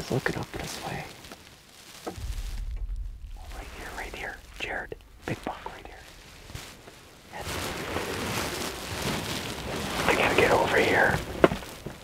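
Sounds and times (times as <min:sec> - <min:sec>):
hushed whispering: 0:00.6 - 0:01.2, 0:03.2 - 0:06.2, 0:07.3 - 0:07.6, 0:10.0 - 0:11.2.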